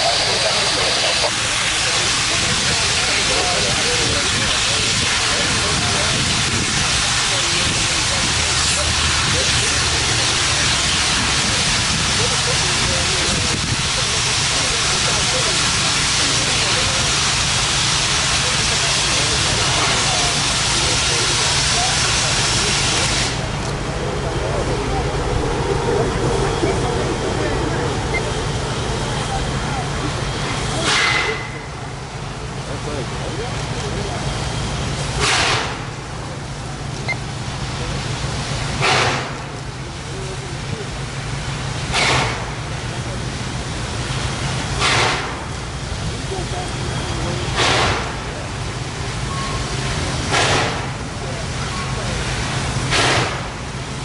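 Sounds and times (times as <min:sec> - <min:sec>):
steam hissing from safety valves: 0:00.0 - 0:25.1, 0:25.8 - 0:54.0.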